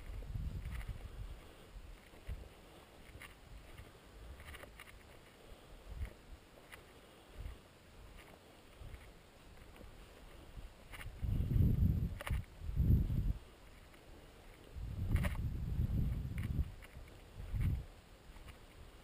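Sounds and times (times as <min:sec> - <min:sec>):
branches rustling: 0:00.0 - 0:19.0.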